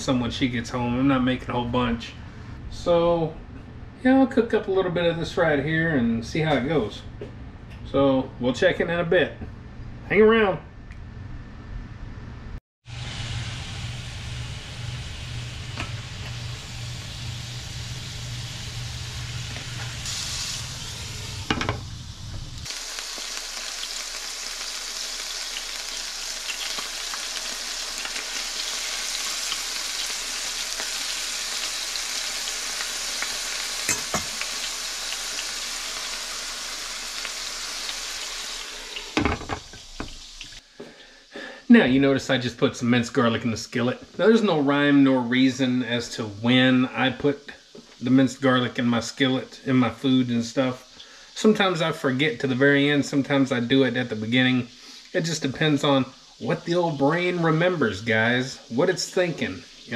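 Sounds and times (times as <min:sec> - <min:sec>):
chicken sizzling in oil: 0:12.8 - 0:40.6, 0:44.2 - 0:59.9.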